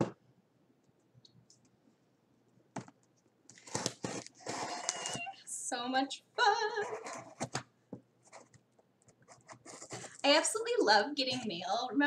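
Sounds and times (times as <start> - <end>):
packaging rustling and scraping: 3.5 - 5.2, 9.5 - 10.2.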